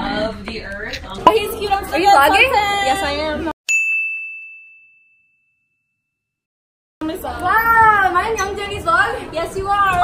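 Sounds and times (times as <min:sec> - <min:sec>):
high bell-like ding: 0:03.7 - 0:06.1.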